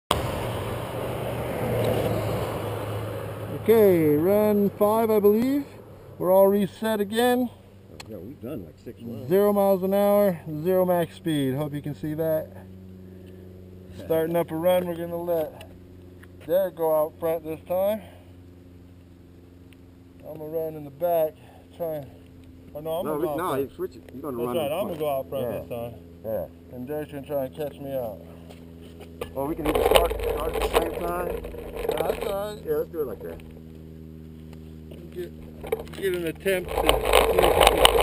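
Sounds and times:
roadside noise: 0.0s - 38.0s
low even hum: 0.1s - 38.0s.

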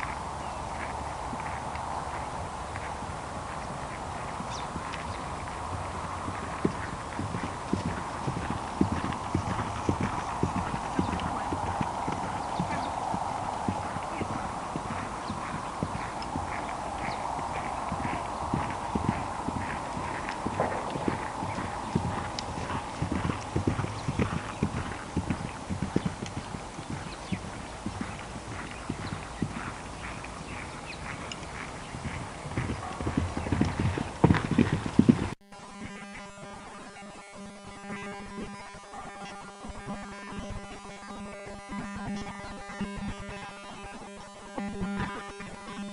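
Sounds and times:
hoofbeats on grassy ground: 0.0s - 45.9s.

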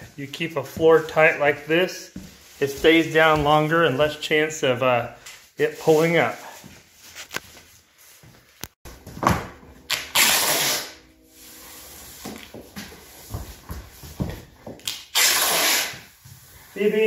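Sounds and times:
masking tape ripping off roll: 9.8s - 11.0s, 14.8s - 16.2s.

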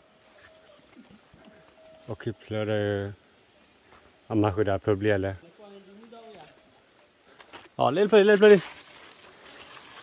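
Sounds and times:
faint thin steady tone: 0.0s - 7.3s.

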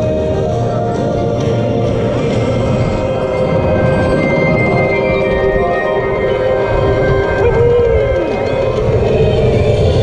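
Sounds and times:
music from ride speakers: 0.0s - 10.0s
roller coaster rumble: 0.0s - 10.0s
wind: 0.0s - 10.0s
falling tone sweep: 2.4s - 10.0s.

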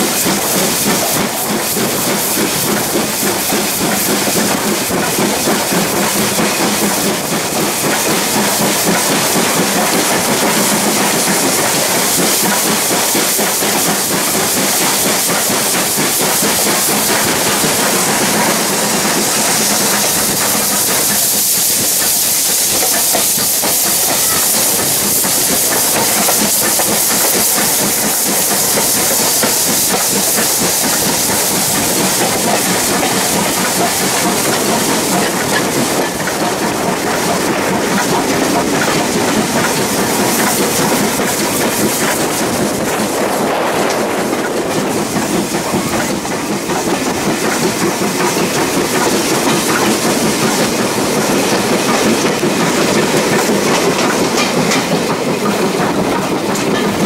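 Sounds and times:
steam hissing: 0.0s - 57.0s
train wheels on rails: 0.0s - 57.0s.

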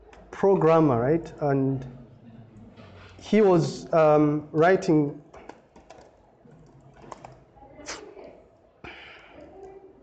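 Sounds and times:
computer keyboard typing: 5.3s - 7.5s.

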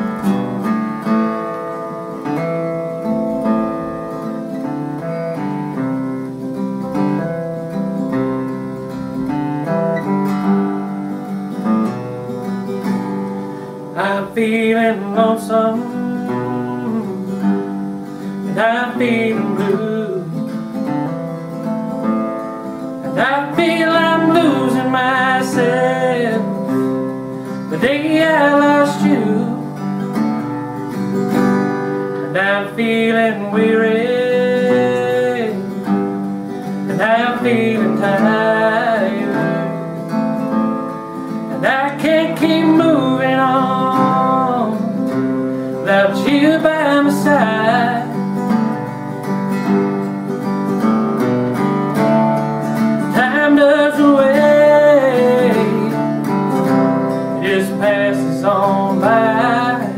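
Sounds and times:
acoustic guitar playing: 0.0s - 59.9s
man singing: 13.9s - 30.2s, 32.1s - 48.9s, 51.6s - 59.9s.

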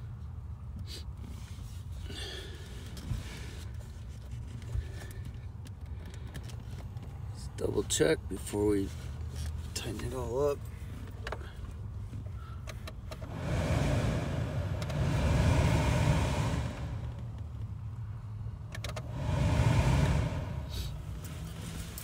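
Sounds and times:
blower fan air rushing: 13.2s - 17.6s, 18.8s - 22.0s
steady low hum: 13.2s - 17.6s, 18.9s - 21.4s.

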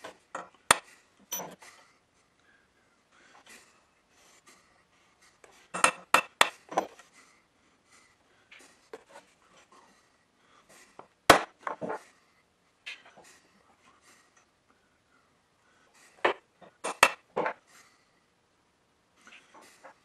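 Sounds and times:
metal tools clicking on steel: 1.3s - 1.6s.

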